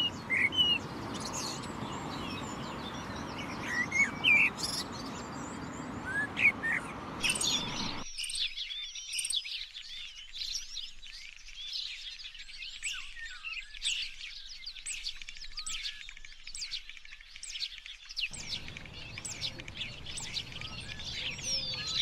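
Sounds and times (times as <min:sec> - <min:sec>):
blackbird singing fluty notes: 0:00.0 - 0:22.0
songbirds chirping and twittering: 0:00.0 - 0:22.0
low background noise: 0:18.3 - 0:22.0.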